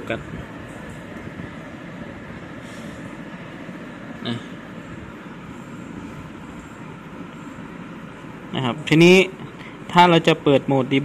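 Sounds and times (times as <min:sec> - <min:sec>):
constant hum: 0:00.0 - 0:11.0.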